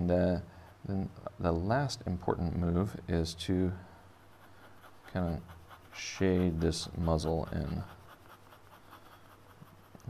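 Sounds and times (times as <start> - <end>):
pen scratching on paper: 4.2 - 10.0.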